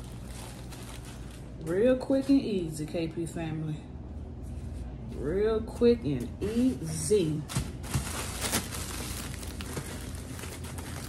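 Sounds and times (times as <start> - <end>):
plastic bag rustling: 0.0 - 1.8, 6.5 - 11.0
low room hum: 0.0 - 11.0.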